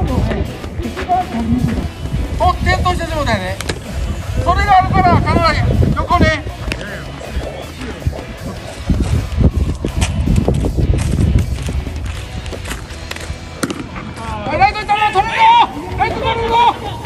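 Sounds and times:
faint voices: 0.0 - 10.8
wind noise on microphone: 0.0 - 14.7
baseball bat hitting ball: 13.0 - 14.1.

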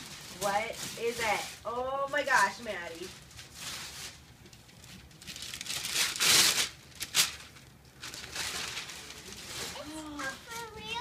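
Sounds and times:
wrapping paper ripping and crumpling: 0.0 - 11.0.

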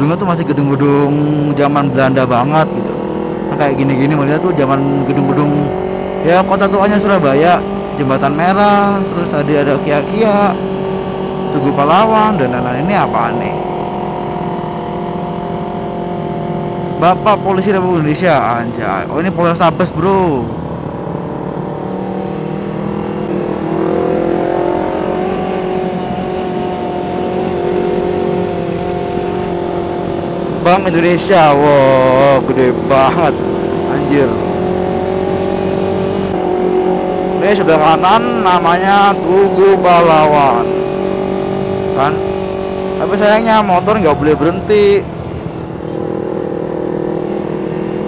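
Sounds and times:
motorcycle engine revving: 0.0 - 48.0.

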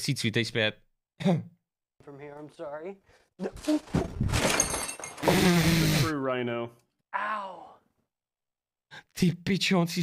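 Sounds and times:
plastic model crashing and scattering: 3.5 - 5.5.

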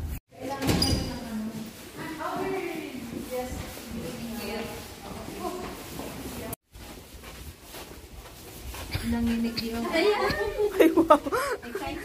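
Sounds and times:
people walking: 0.0 - 12.0.

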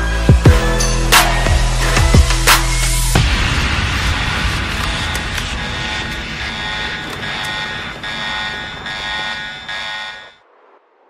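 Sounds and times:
buzzy engine-like drone: 4.2 - 10.4
thin high whine: 4.2 - 10.4.

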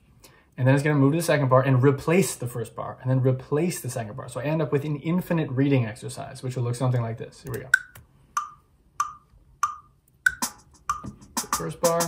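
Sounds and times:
electronic metronome clicks: 7.5 - 11.1.

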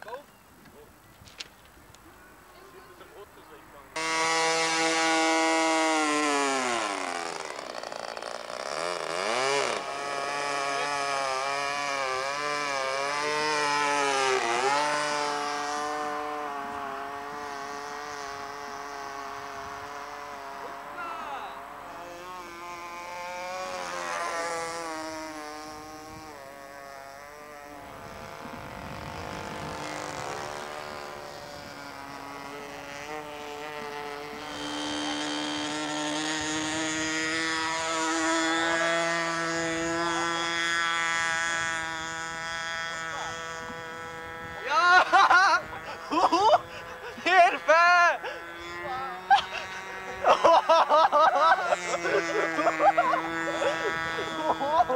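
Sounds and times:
model airplane engine high revs: 2.2 - 54.9.

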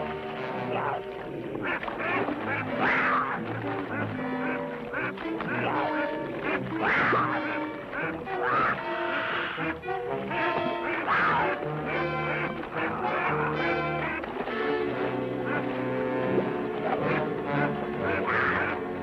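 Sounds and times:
music with held notes: 0.0 - 19.0
waterfowl calling: 0.0 - 19.0.

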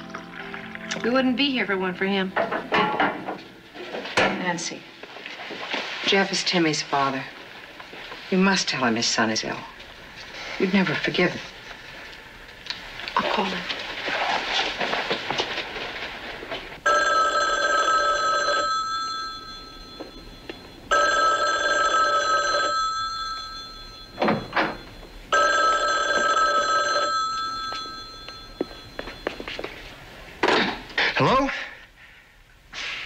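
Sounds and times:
desk telephone ringing: 16.8 - 29.8.

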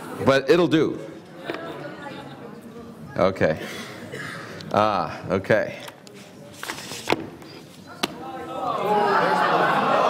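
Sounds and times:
many voices chattering: 0.0 - 10.0.

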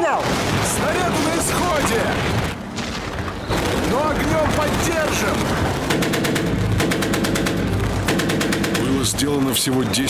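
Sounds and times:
gunfire: 0.0 - 9.5.

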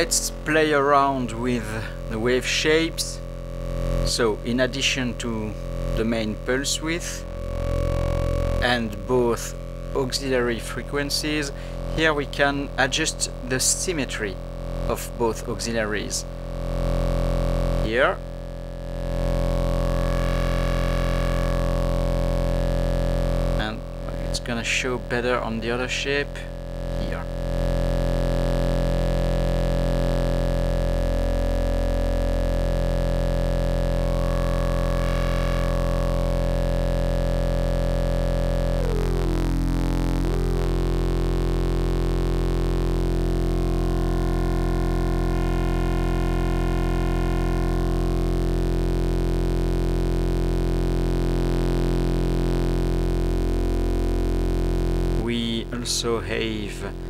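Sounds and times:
buzzy synthesizer drone: 0.0 - 57.0.

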